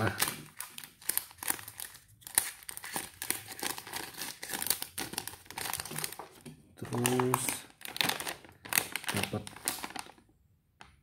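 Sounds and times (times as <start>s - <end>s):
plastic packaging crinkling: 0.0s - 10.3s.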